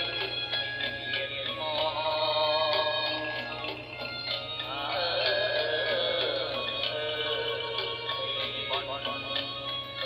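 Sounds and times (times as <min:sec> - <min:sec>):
song accompaniment: 0:00.0 - 0:10.0
person singing ornamented melody: 0:04.6 - 0:09.6.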